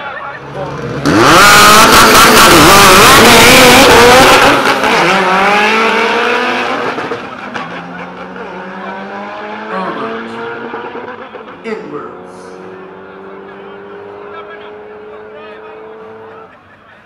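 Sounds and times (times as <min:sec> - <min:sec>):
race cars accelerating: 0:00.0 - 0:17.0.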